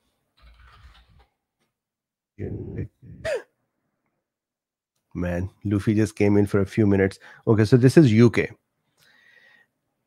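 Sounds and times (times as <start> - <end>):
man clearing his throat: 2.6 - 3.5.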